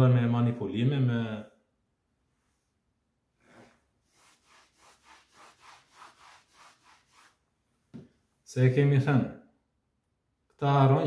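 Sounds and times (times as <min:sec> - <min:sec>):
eraser rubbing chalk blackboard: 0:03.5 - 0:07.5.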